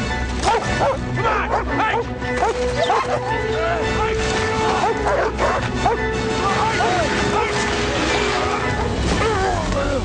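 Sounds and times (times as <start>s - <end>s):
background music: 0.0s - 10.0s
sled dogs yipping and barking: 0.2s - 9.4s.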